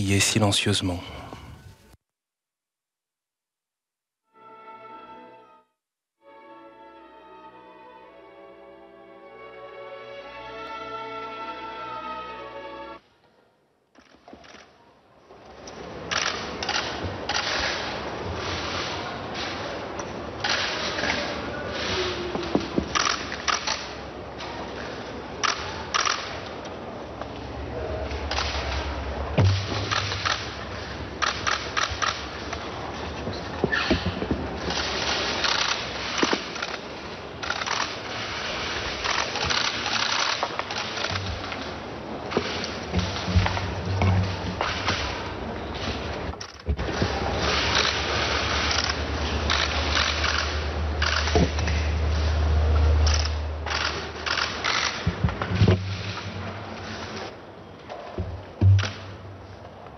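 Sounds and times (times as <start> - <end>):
camera shutters clicking: 25.4 - 26.3, 48.6 - 51.4, 53.1 - 55.0.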